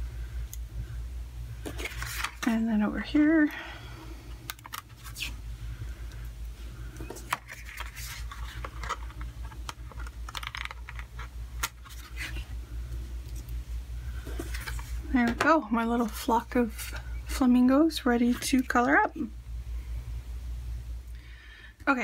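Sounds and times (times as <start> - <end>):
steady low hum: 0.0 - 22.0
paper rustling: 1.6 - 2.5, 7.1 - 12.5.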